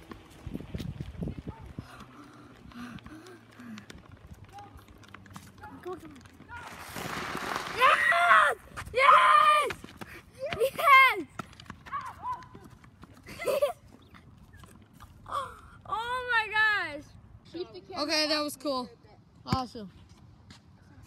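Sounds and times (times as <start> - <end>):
boys yelling: 7.7 - 12.6.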